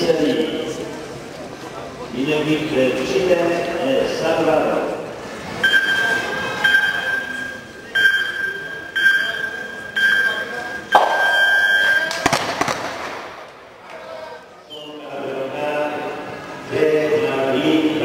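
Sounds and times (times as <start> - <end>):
high electronic countdown beeps: 5.6 - 12.2
long final beep: 5.6 - 12.2.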